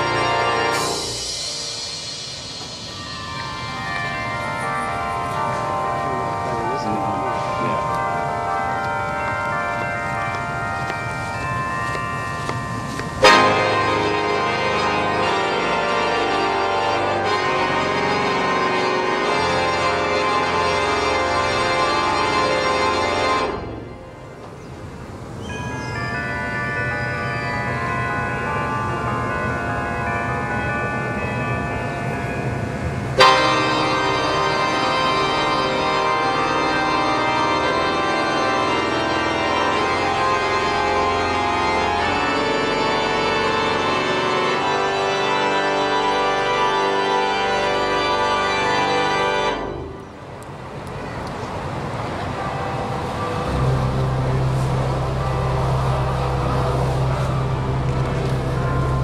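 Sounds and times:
organ playing fanfare chords: 0.0 - 59.0.

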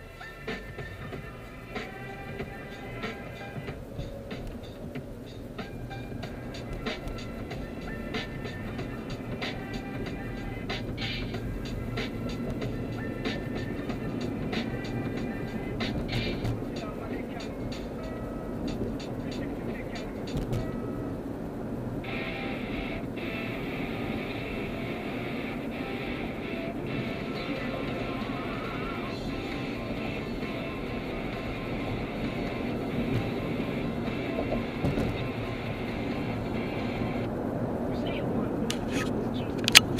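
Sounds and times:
music from car stereo: 0.0 - 39.9
road and engine noise: 0.0 - 39.9.

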